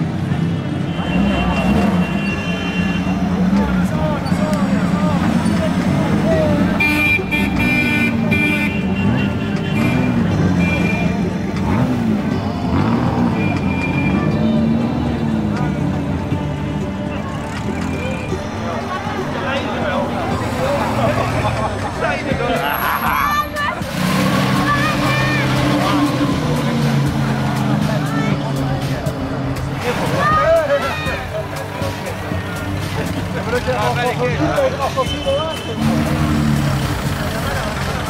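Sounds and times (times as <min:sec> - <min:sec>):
crowd voices: 0:00.0 - 0:38.0
vintage car engines running: 0:00.0 - 0:38.0.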